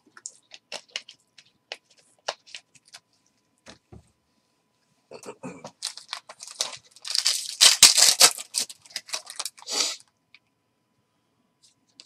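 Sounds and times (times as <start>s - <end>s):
foil wrappers crinkling and tearing: 5.7s - 10.0s.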